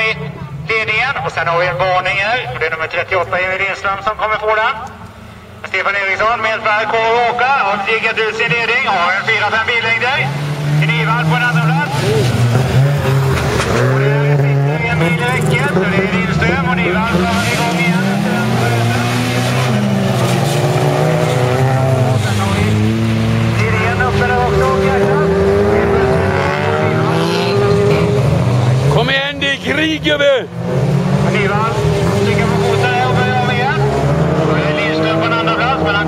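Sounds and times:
racing car engines revving: 0.0 - 36.0.

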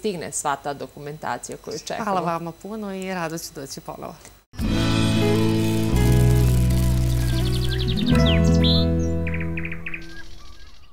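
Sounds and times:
sustained music chords: 4.6 - 10.0
birds chirping and trilling: 6.4 - 10.9.

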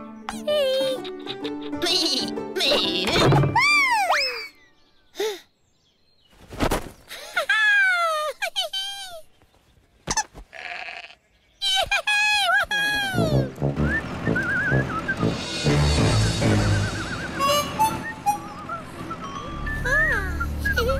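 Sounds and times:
cartoon sheep bleating: 10.5 - 11.2
light music with whistled tune: 13.4 - 20.9.

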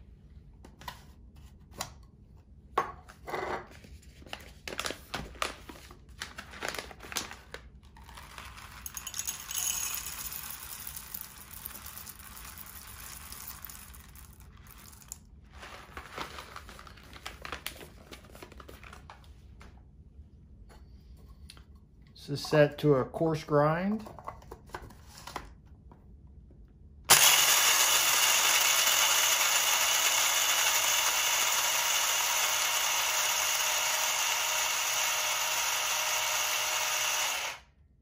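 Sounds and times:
bag crinkling: 4.6 - 8.9, 11.6 - 19.1
coffee beans pouring into grinder: 8.0 - 16.8, 27.1 - 37.6.

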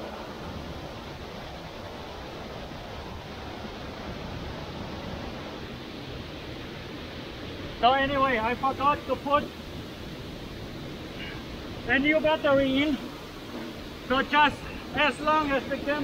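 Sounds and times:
waterfall roaring into a pool: 0.0 - 16.0.

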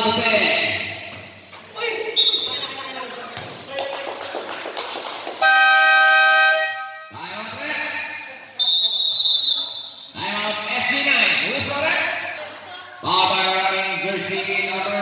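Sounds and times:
crowd voices in gym: 0.0 - 4.8, 5.4 - 15.0
basketball game horn: 5.4 - 7.1
referee's whistle blast: 8.6 - 10.0.

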